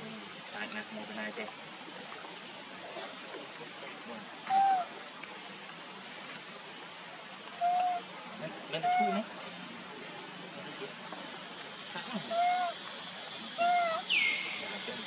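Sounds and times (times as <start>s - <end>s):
insects droning: 0.0s - 15.0s.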